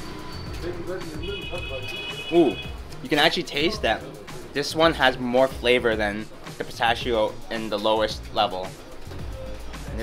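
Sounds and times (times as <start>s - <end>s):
faint music: 0.0s - 10.0s.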